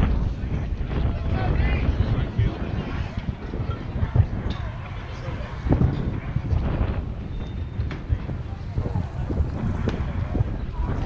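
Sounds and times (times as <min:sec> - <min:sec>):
faint distant voices: 0:00.0 - 0:11.0
wind buffeting microphone: 0:00.0 - 0:11.0.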